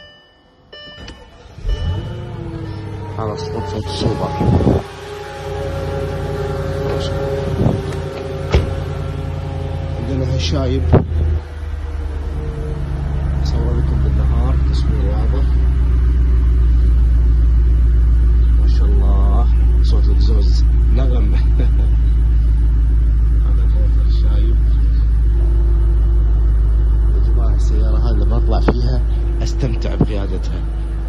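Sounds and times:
car engine idling: 0.8 - 31.0.

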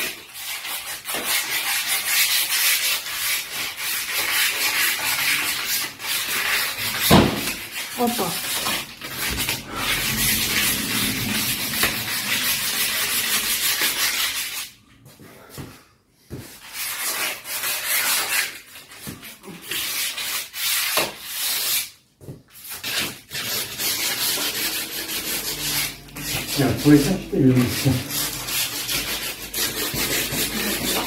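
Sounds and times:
hand sanding wood: 0.0 - 14.7, 16.3 - 31.0.

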